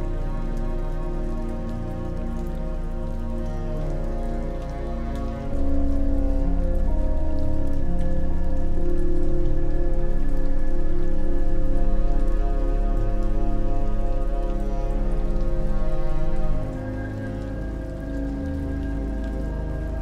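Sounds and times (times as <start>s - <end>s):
rain with raindrops pattering: 0.0s - 20.0s
soft relaxation music chords: 0.0s - 20.0s.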